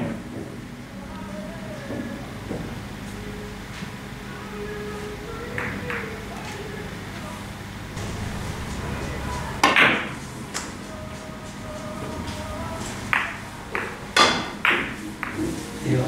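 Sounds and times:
murmur of voices: 0.7 - 16.0.

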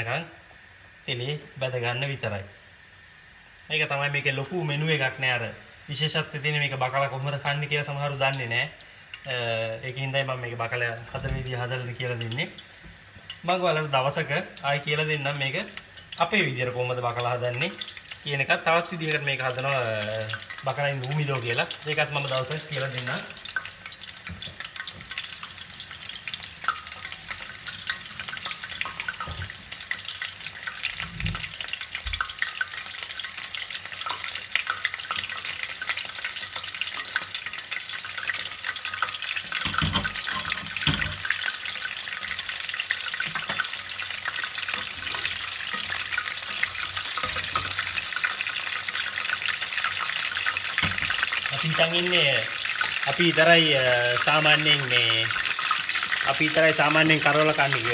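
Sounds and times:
fish deep-frying in oil: 0.0 - 57.9.

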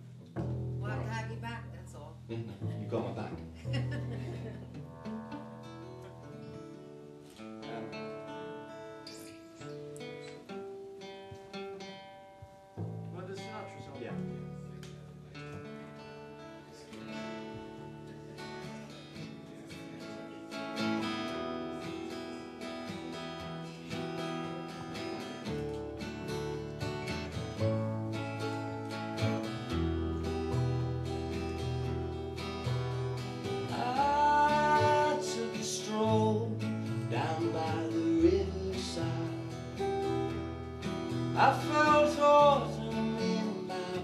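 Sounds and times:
upright double bass: 0.0 - 6.6
acoustic guitars playing: 0.0 - 44.0.

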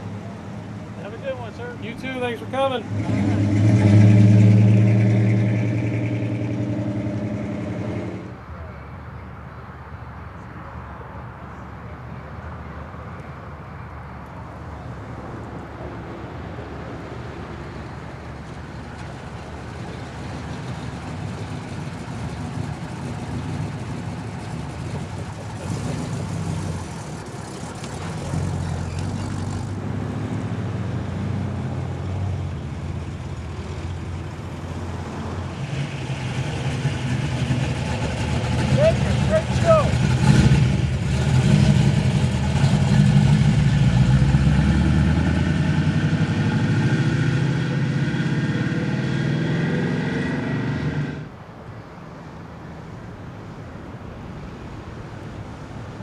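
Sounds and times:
car engines rumbling past: 0.0 - 56.0
car engine revving: 1.0 - 8.3, 20.1 - 32.2, 35.5 - 51.3.

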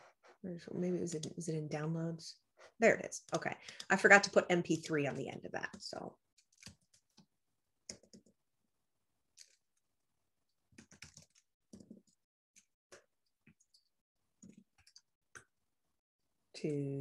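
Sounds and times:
keyboard and mouse clicks: 5.6 - 8.4, 10.7 - 12.2.

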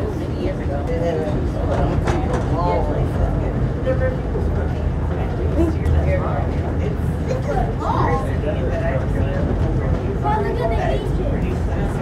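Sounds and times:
tram rumble from inside: 0.0 - 12.0.

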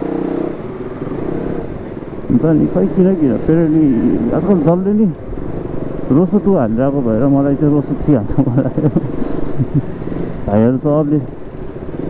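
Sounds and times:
motorcycle engine running: 0.0 - 12.0
man talking: 2.3 - 5.2, 6.1 - 9.2, 10.4 - 11.3.

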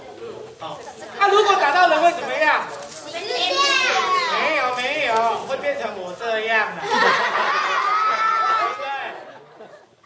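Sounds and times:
children calling out together: 3.1 - 4.6
man asking a question: 4.0 - 6.9.

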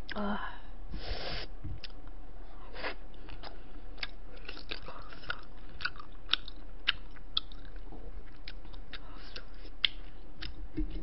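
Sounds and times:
person chewing: 1.8 - 2.1, 2.8 - 10.6.

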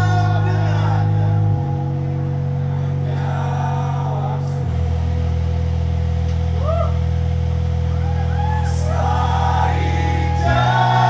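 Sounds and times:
held low bass note: 0.0 - 11.0.

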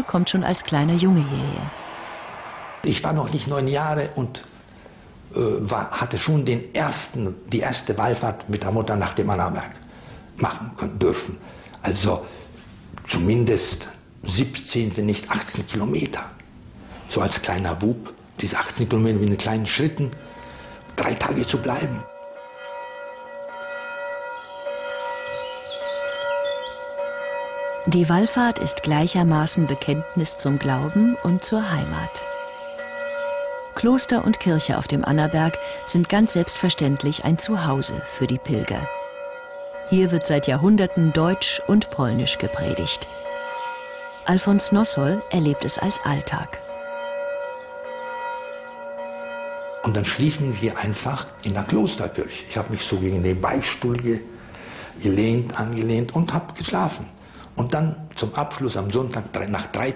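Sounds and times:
church bells ringing: 0.0 - 12.2, 17.1 - 57.5, 58.3 - 59.9.

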